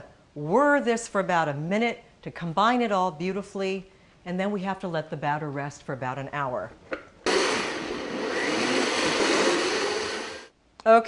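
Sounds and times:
blender running: 0:07.2 - 0:10.5.

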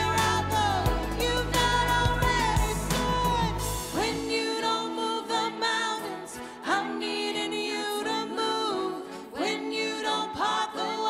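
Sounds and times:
instrumental accompaniment: 0:00.0 - 0:04.3
woman singing into a microphone: 0:00.0 - 0:11.0.

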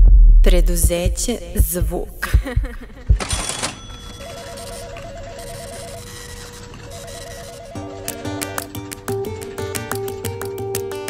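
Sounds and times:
plucked guitar music: 0:07.8 - 0:11.0.

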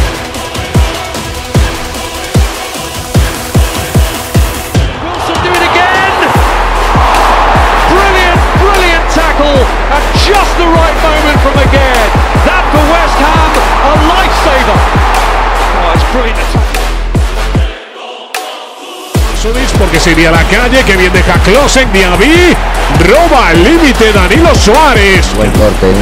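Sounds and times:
electronic music: 0:00.0 - 0:26.0.

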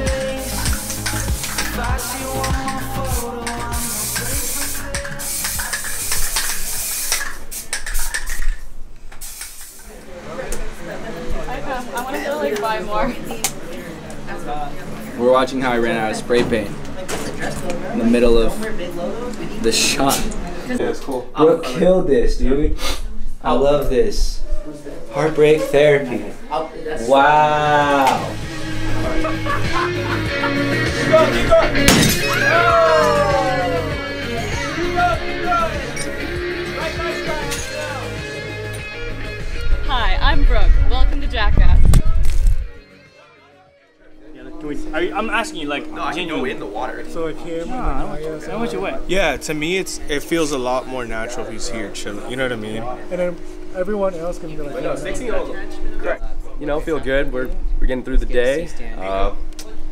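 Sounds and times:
background music: 0:00.0 - 0:06.4, 0:27.6 - 0:41.5
spray paint can hissing: 0:00.0 - 0:09.9
voices: 0:24.4 - 0:42.0
glass smashing: 0:31.9 - 0:32.4.

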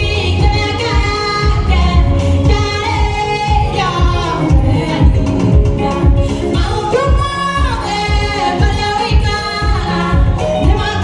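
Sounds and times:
backing music with heavy bass beat: 0:00.0 - 0:11.0
woman singing into a microphone: 0:00.0 - 0:11.0.

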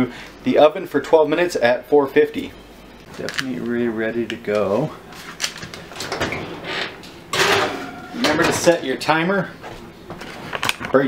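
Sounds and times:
metal sheet scraping oven rack: 0:05.8 - 0:09.0.

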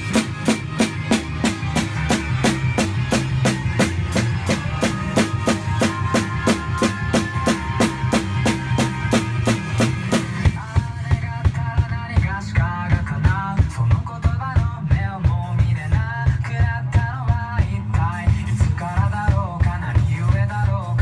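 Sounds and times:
drum kit playing a steady beat: 0:00.0 - 0:21.0
recorded song: 0:00.0 - 0:21.0.

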